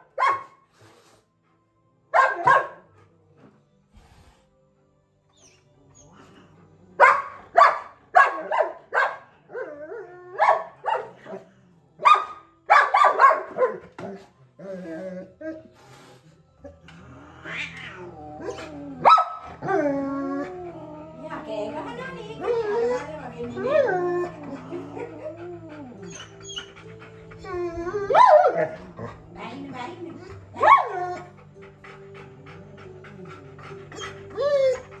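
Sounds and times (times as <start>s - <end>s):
puppy barking: 0.0s - 0.6s, 2.1s - 2.8s, 7.0s - 9.3s, 10.4s - 11.4s, 12.0s - 13.8s, 19.0s - 19.5s, 30.6s - 30.9s
pet animal whining: 5.3s - 7.1s, 14.6s - 35.0s
soft background music with beat: 18.1s - 35.0s.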